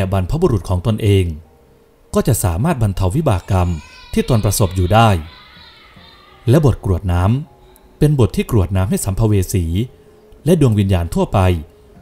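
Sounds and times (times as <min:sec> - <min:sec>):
man narrating: 0:00.0 - 0:01.4, 0:02.1 - 0:05.3, 0:06.5 - 0:11.7.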